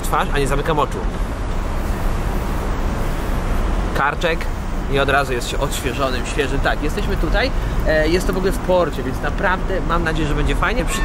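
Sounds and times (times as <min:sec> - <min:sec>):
aerosol spray hissing: 0:01.2 - 0:04.8.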